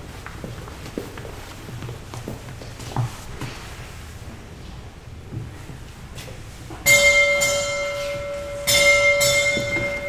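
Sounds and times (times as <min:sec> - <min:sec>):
small bell ringing: 0:06.9 - 0:10.0.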